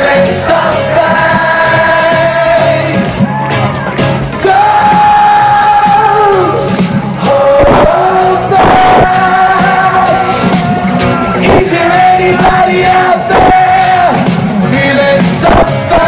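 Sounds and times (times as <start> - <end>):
crowd shouting and cheering: 0.0 - 16.0
loud live music: 0.0 - 16.0.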